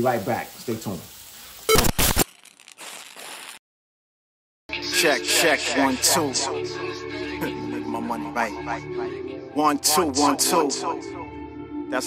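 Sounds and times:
faint hiss: 0.0s - 1.8s
static glitch noise burst: 1.7s - 3.0s.

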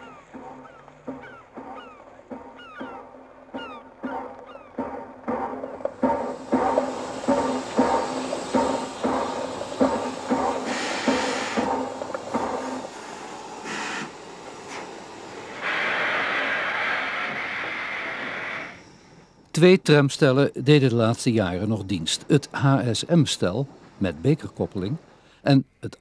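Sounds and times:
steam locomotive rhythmic beat: 0.0s - 19.5s
steam hissing: 4.8s - 19.5s.

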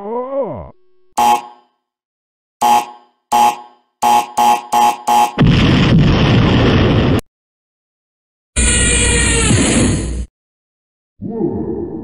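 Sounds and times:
short electronic beeps: 1.2s - 1.7s, 2.6s - 5.4s
cartoon explosion: 5.4s - 7.2s.

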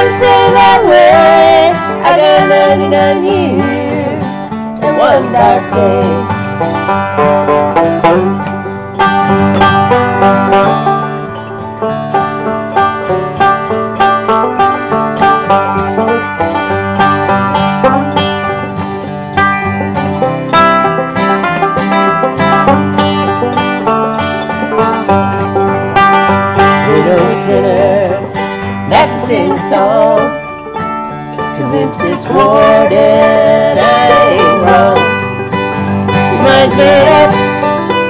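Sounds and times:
acoustic guitar: 0.0s - 38.0s
banjo picking: 0.0s - 38.0s.

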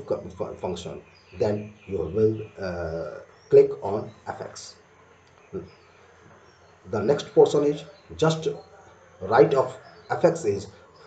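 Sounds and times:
man speaking: 0.0s - 4.8s, 6.9s - 10.8s
faint background hiss: 0.0s - 11.0s.

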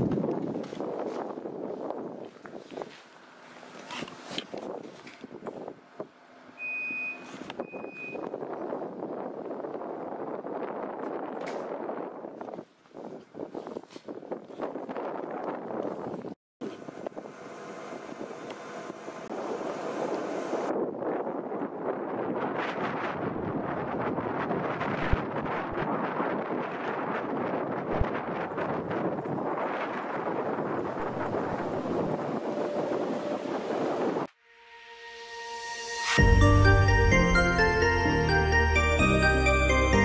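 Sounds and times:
wind buffeting microphone: 0.0s - 3.0s, 7.6s - 34.3s
passenger train rushing past: 31.1s - 34.3s.

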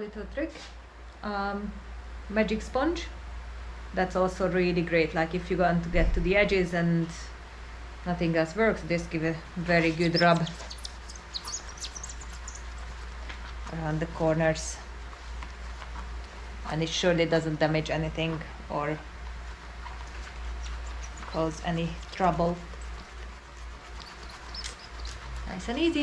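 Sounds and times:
steady low hum: 0.0s - 26.0s
small birds chirping: 9.7s - 13.1s, 20.0s - 26.0s
sponge scrubbing glass: 9.8s - 13.5s, 19.5s - 26.0s
faint high squeaks: 10.0s - 12.8s.

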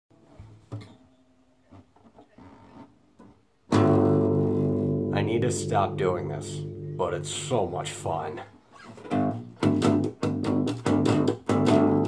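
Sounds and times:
loud guitar chord ringing: 3.7s - 8.2s
classical guitar plucked notes: 3.7s - 12.0s.

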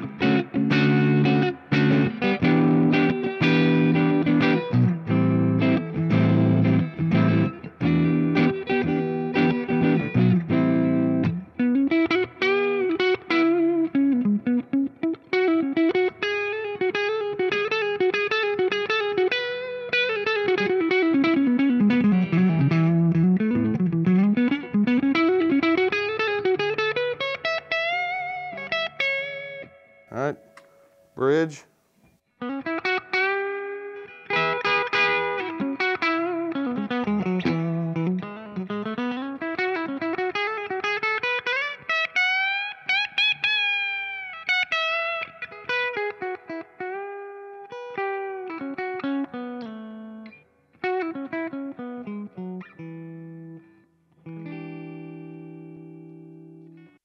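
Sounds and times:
electric guitar pitch-sweeping line: 0.0s - 31.2s, 32.4s - 57.0s
electric guitar chords: 0.0s - 31.6s, 32.4s - 57.0s.

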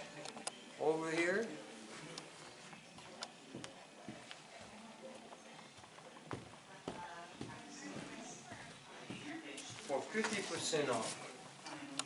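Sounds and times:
faint footsteps on hard floor: 1.1s - 11.8s.

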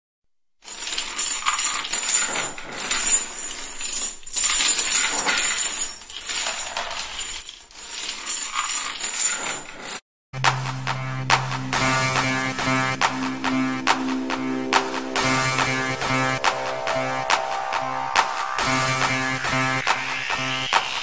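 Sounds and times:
metal chains rattling: 0.6s - 10.0s.

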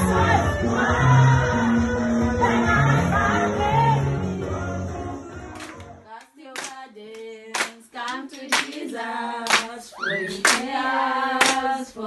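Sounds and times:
group singing a worship song: 0.0s - 12.0s
hand claps: 5.6s - 9.8s, 10.4s - 10.7s, 11.4s - 11.8s.

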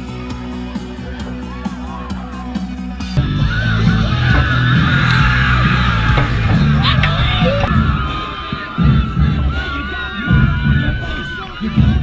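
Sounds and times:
crowd cheering and shouting: 0.0s - 12.0s
low thud: 3.3s - 9.3s.

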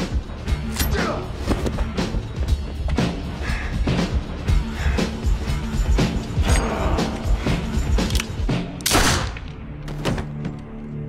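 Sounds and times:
dramatic orchestral score: 0.0s - 11.0s.

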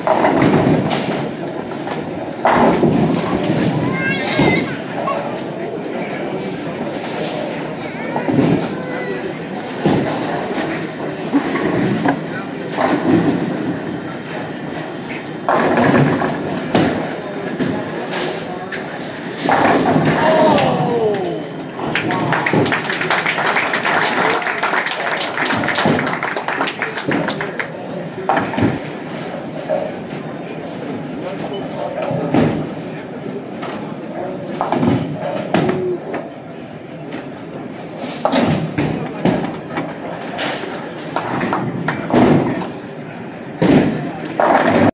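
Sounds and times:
bowling balls thudding: 0.0s - 4.8s, 9.7s - 14.5s, 15.1s - 18.1s, 19.1s - 20.6s, 34.5s - 35.9s, 38.2s - 42.8s.

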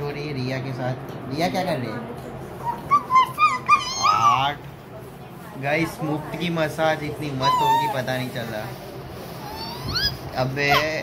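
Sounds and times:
dog whining and yipping: 2.6s - 4.6s, 7.4s - 8.0s, 9.4s - 11.0s.

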